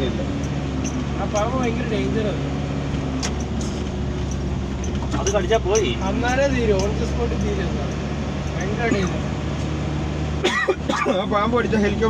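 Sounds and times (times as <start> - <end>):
vehicle engine hum and road noise: 0.0 - 12.0.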